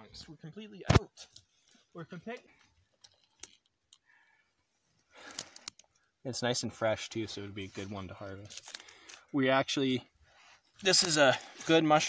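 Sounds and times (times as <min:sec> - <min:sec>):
twigs rustling and crackling: 0:01.2 - 0:06.2, 0:07.4 - 0:09.5, 0:10.2 - 0:12.0.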